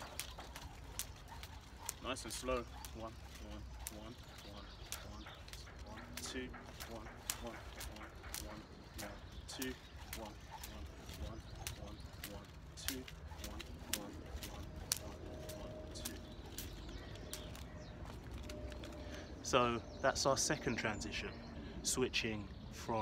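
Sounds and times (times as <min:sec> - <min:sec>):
skipping rope ticking on pavement: 0:00.0 - 0:19.2
low outdoor rumble: 0:00.0 - 0:23.0.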